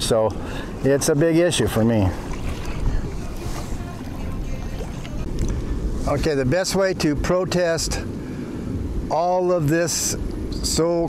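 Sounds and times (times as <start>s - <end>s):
small waves lapping: 0.0s - 9.1s
wind noise on microphone: 0.0s - 11.0s.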